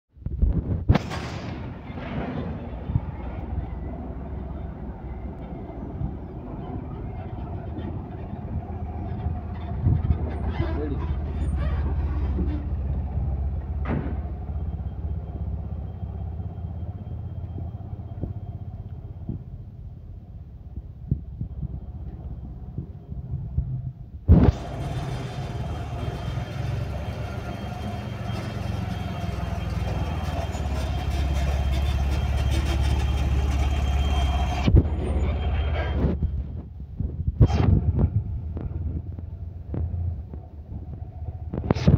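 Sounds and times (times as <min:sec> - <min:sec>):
engine idling: 0:01.5 - 0:36.6
rushing noise on microphone: 0:35.9 - 0:41.9.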